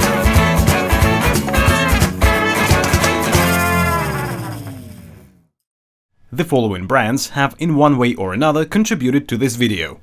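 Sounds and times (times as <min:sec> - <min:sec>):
intro music sliding down in pitch: 0:00.0 - 0:05.1.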